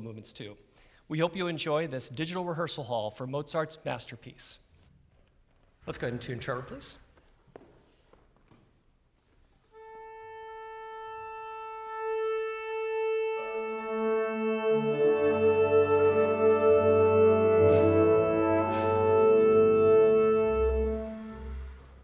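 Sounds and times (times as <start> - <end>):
wind instrument tuning note: 9.7 - 22.0
wind ensemble sustained chord: 13.2 - 22.0.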